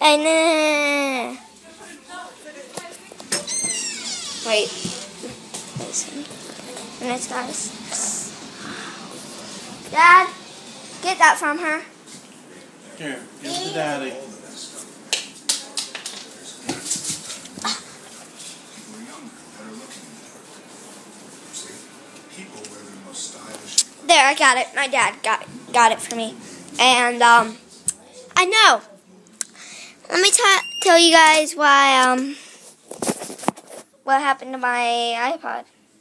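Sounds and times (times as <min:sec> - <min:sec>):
baby squealing: 0:03.5 - 0:04.8.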